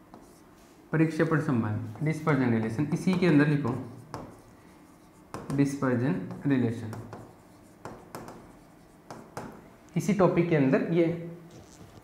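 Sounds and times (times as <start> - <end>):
pen tapping and scratching on whiteboard: 0.1 - 0.4, 2.4 - 9.6.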